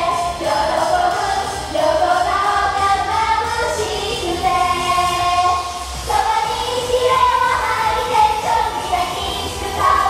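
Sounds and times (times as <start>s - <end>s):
pop backing track: 0.0s - 10.0s.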